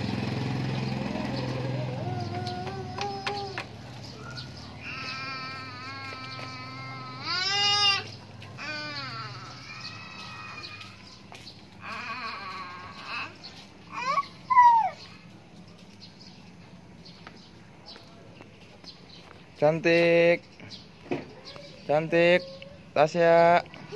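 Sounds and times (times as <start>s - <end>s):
toddler squealing and calling: 1.6s - 11.2s, 11.8s - 15.2s.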